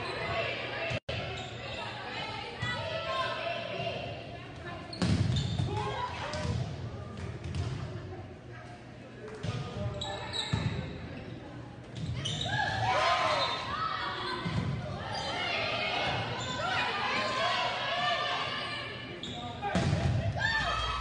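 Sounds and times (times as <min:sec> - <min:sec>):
crowd shouting and cheering: 0:19.7 - 0:21.0.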